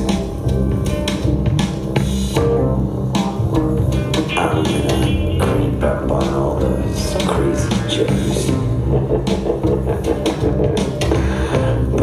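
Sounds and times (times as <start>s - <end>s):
hip-hop dance track: 0.0s - 12.0s.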